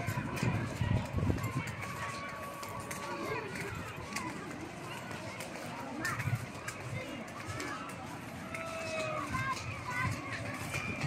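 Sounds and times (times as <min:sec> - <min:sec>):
footsteps on sandy path: 0:00.0 - 0:11.0.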